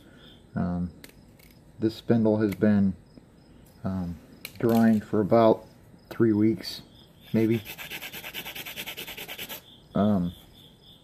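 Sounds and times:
fast even scratching: 7.3 - 9.6.

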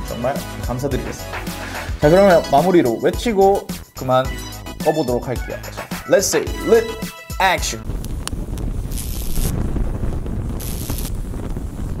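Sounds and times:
fire crackling: 5.7 - 12.0
fire roaring: 7.8 - 12.0
hiss bursts: 8.0 - 12.0.

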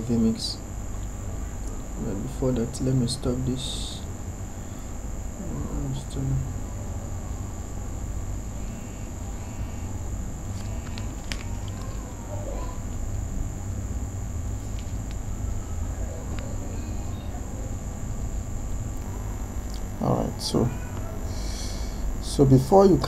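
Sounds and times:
constant high-pitched tone: 0.0 - 23.0
low hum: 0.0 - 23.0.

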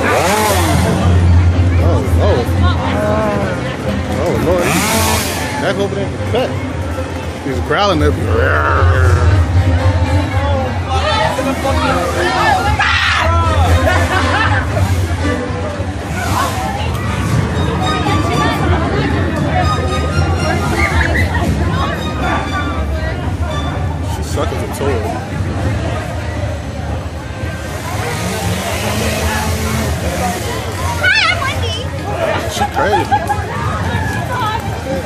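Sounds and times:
crowd talking: 0.0 - 35.0
steady low rumble: 0.7 - 4.2, 7.9 - 20.7
low hum: 8.0 - 19.6.

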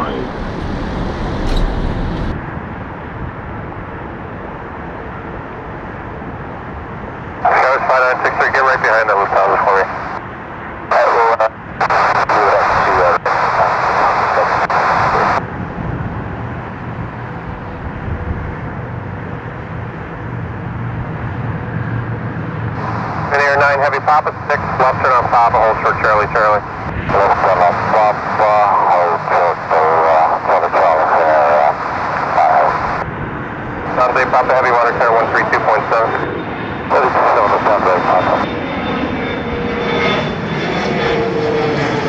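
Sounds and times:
garbled radio speech: 0.0 - 0.4, 7.4 - 10.2, 10.9 - 15.4, 22.8 - 33.0, 33.8 - 38.5
low jet engine rumble: 0.0 - 42.0
radio hiss: 7.4 - 10.2, 10.9 - 15.4, 22.8 - 33.0, 33.9 - 36.2, 36.9 - 38.4.

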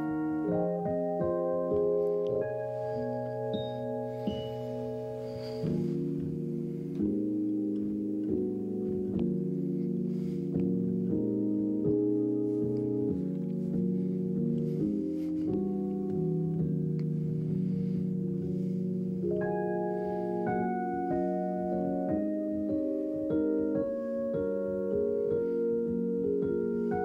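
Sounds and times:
keyboard playing ambient chords: 0.0 - 27.0.

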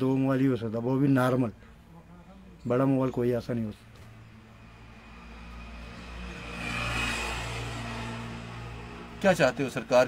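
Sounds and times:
motor vehicle passing: 3.9 - 10.0.

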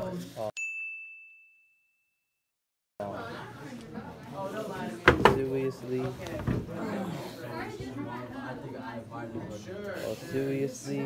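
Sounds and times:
bright ding: 0.6 - 2.0.

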